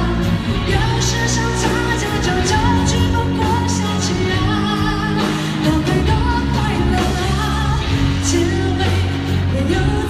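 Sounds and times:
pop song singing over band: 0.0s - 10.0s.

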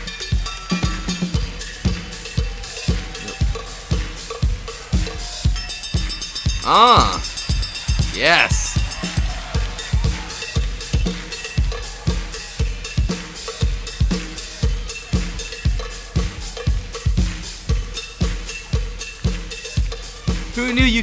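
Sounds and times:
drum kit groove: 0.0s - 21.0s.

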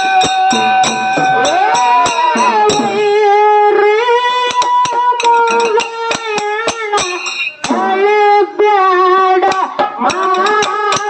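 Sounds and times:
drum strikes: 0.0s - 3.4s, 4.5s - 8.0s, 9.4s - 11.0s
small hand cymbals: 0.0s - 3.4s, 4.2s - 8.0s, 9.4s - 11.0s
person singing folk song: 0.0s - 11.0s.

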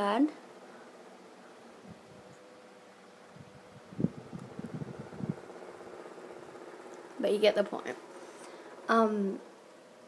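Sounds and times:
mechanical hum: 0.0s - 10.0s.

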